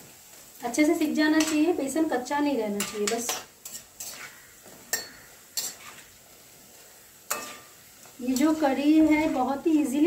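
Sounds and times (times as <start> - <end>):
oil sizzling: 0.0 - 10.0
metal spoon clinking against pan: 1.4 - 1.8, 2.8 - 4.3, 4.9 - 5.8, 7.3 - 7.7.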